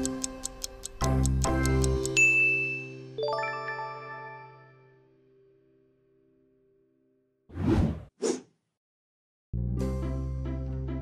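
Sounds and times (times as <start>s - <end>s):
fast clock ticking: 0.0s - 2.2s
background music chords: 0.0s - 5.5s, 9.6s - 11.0s.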